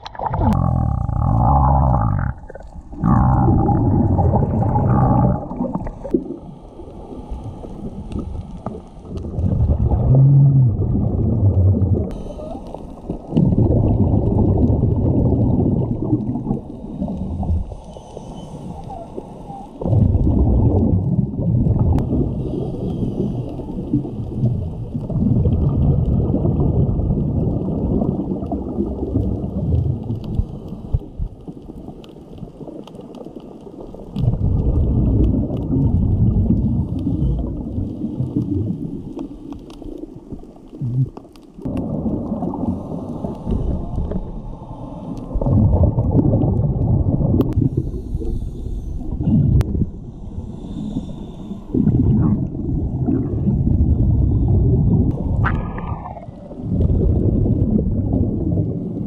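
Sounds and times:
underwater regulator bubbles: 0.0 - 59.0.

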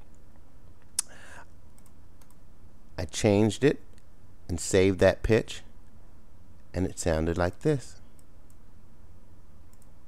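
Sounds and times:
low steady background hiss: 0.0 - 10.0
computer click: 1.8 - 2.4, 9.7 - 9.9.

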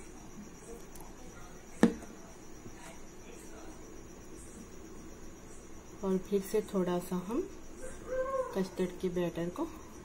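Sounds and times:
sharp knock: 1.8 - 2.0.

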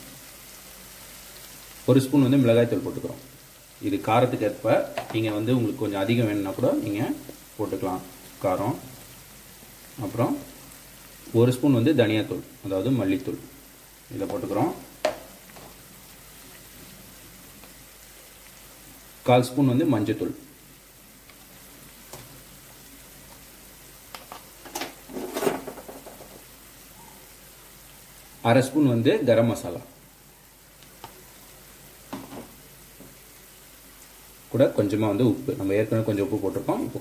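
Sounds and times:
food sizzling in oil: 0.0 - 37.0
person's voice: 1.9 - 8.9, 10.0 - 10.5, 11.3 - 13.5, 14.1 - 14.9, 19.2 - 20.5, 28.4 - 29.9, 34.5 - 37.0.

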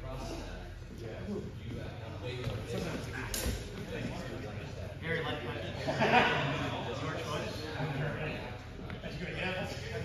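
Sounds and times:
indistinct voices in a hall: 0.0 - 10.0.

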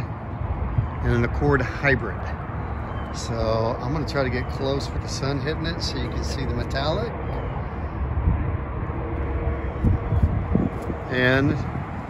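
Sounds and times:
low rumbling outdoor noise: 0.0 - 12.0.

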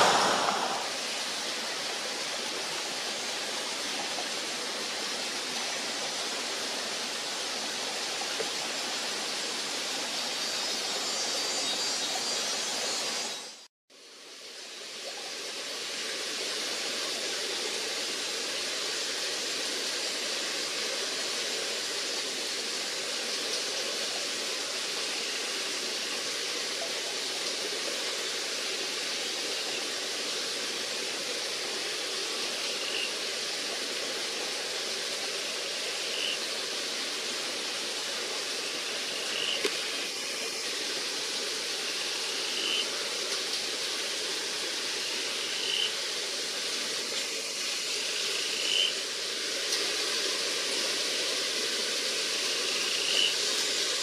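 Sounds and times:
forest ambience hiss: 0.0 - 54.0.

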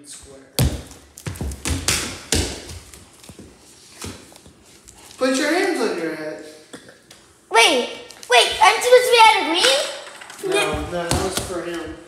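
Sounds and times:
footsteps on hardwood floor: 0.3 - 5.1, 10.4 - 12.0.

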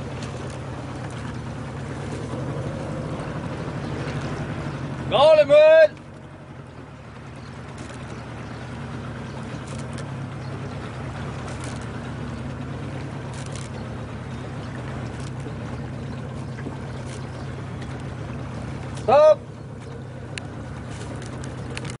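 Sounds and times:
boat motor humming: 0.0 - 22.0
water noise: 0.0 - 22.0.

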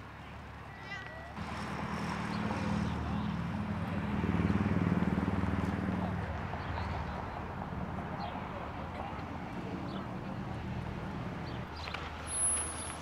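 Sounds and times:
vehicle engine rumbling past: 1.4 - 13.0.

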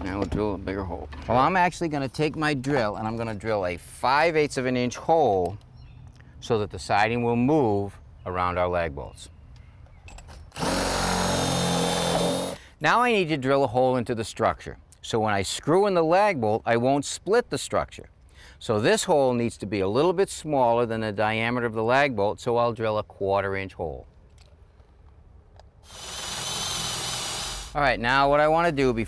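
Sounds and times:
cordless drill boring through siding: 10.5 - 12.6, 25.8 - 27.8.

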